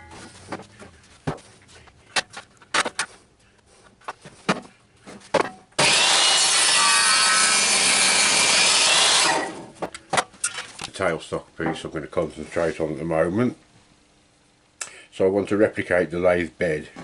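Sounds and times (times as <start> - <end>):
table saw cutting wood: 5.8 - 9.7.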